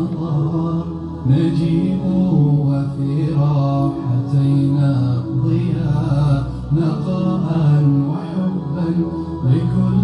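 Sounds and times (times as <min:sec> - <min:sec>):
man chanting recitation: 0:00.0 - 0:10.0.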